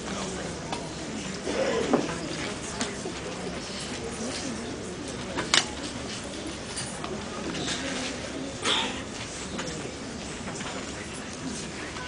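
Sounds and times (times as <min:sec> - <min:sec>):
murmur of room with people: 0:00.0 - 0:12.0.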